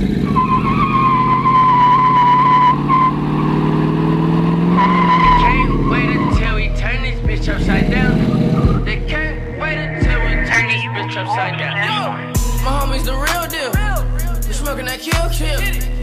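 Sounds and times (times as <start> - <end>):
tires squealing: 0.0 - 13.7
car engine revving: 0.0 - 16.0.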